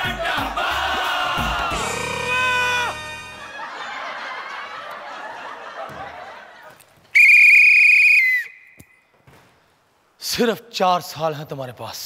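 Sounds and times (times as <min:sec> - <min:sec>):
coach's whistle trilling blast: 0:07.2 - 0:09.0.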